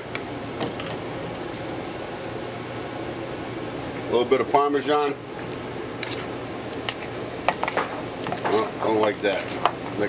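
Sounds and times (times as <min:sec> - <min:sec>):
kitchen fan hum: 0:00.0 - 0:10.0.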